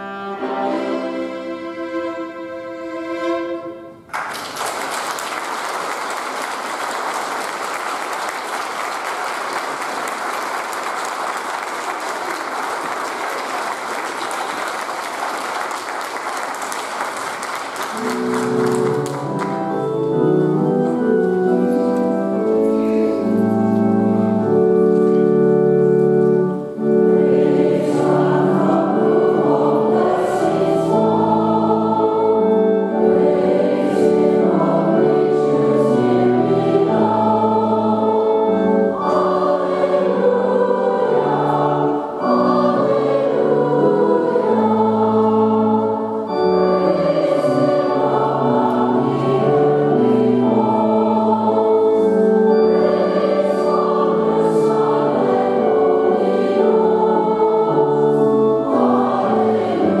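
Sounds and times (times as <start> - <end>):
church choir singing in harmony: 0.0 - 4.0, 5.2 - 60.0.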